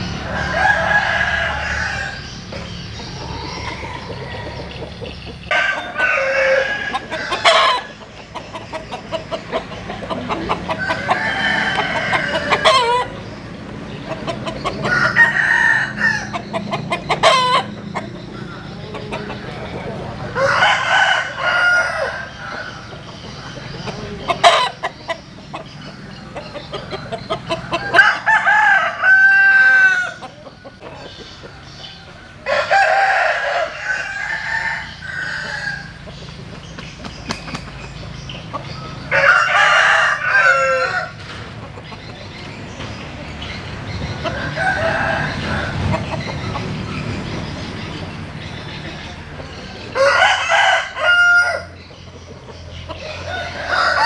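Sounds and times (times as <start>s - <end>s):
roosters crowing: 0.0s - 54.0s.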